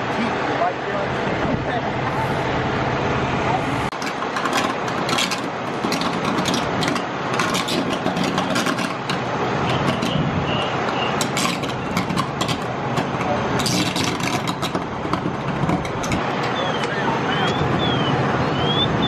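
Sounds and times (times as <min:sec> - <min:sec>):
engine running: 0:00.0 - 0:19.0
sharp knocks and clicks: 0:03.9 - 0:17.6.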